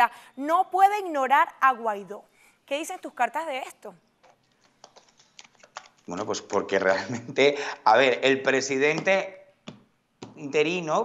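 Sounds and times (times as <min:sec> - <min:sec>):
cards being shuffled: 0:04.2 - 0:06.9.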